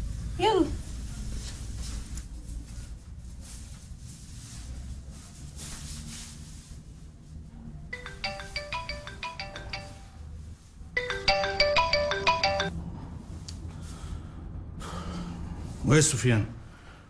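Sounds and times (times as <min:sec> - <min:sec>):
phone melodic ringtone: 0:08.0 - 0:10.3, 0:11.0 - 0:12.7.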